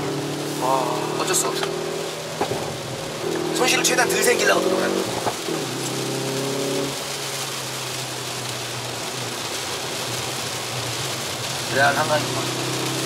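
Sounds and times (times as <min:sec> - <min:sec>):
car engine in cabin: 0:00.0 - 0:07.6
rain and tyre spray: 0:00.0 - 0:13.0.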